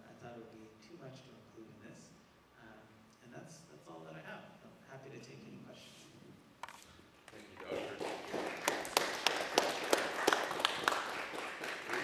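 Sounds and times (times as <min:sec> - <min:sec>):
audience applause: 0:07.3 - 0:12.0
close person clapping: 0:07.3 - 0:12.0.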